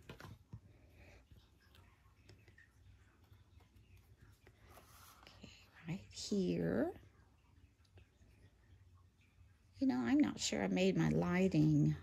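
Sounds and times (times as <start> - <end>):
cardstock rustling and tapping: 0.0 - 0.8.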